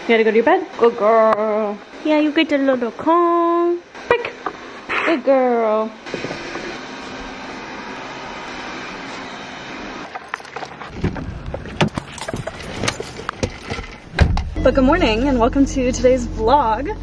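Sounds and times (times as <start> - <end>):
knocks and rustles: 10.1 - 14.6.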